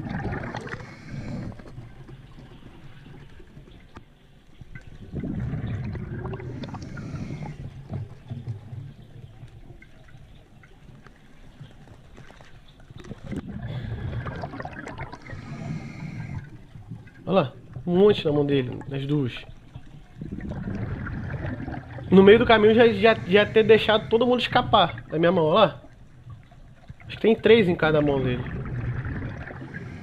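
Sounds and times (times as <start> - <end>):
underwater breath bubbling: 0.0 - 2.4, 5.0 - 9.0, 13.0 - 17.2, 20.0 - 25.2, 28.0 - 30.0.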